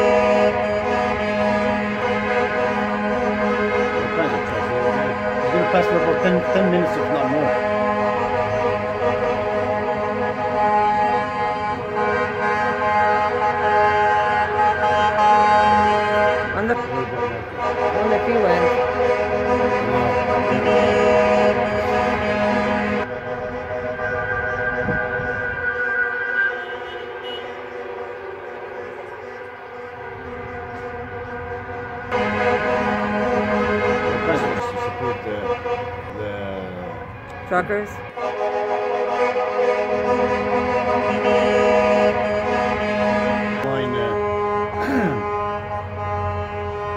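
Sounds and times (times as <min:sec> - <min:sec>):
truck and fire engine horns honking: 0:00.0 - 0:46.9.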